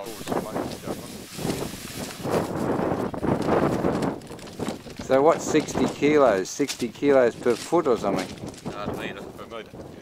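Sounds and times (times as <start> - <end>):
powder pouring from plastic bag: 0.0 - 6.2.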